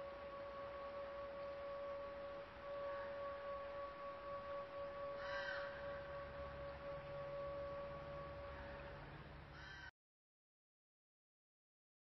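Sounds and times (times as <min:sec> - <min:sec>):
faint steady drone: 0:00.0 - 0:09.9
bird caw: 0:05.2 - 0:06.0, 0:08.4 - 0:09.9.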